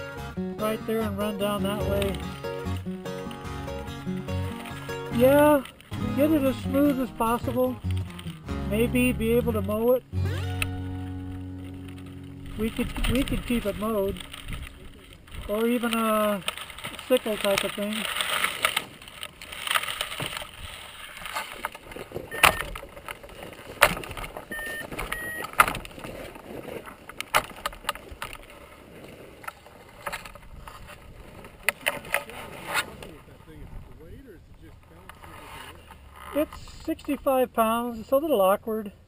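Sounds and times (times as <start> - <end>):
dry grass brushing microphone: 0.6 - 10.1, 11.0 - 24.5, 28.5 - 37.0
wind noise: 11.2 - 17.8, 30.0 - 34.8.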